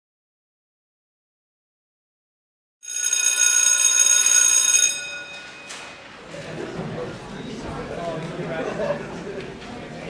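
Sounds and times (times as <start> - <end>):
electric school bell ringing: 2.8 - 6.2.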